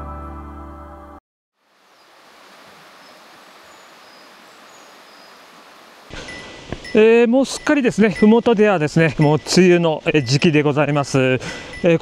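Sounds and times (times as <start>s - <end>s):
wind rustling through foliage: 1.6s - 11.8s
faint high chirps: 6.1s - 12.0s.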